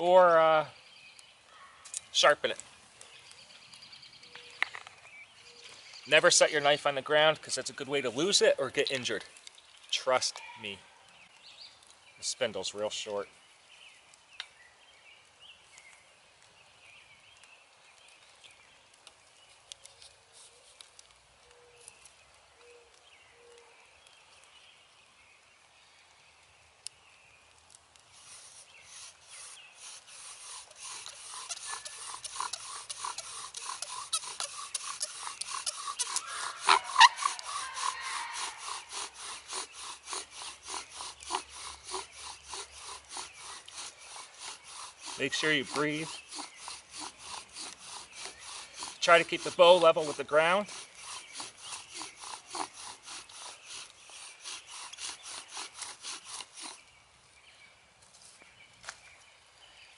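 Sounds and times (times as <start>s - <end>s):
bow drill spindle grinding wood: 28.2s - 56.9s.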